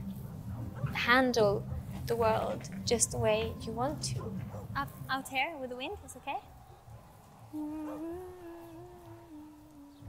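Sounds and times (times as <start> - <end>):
person humming: 7.5 - 10.0.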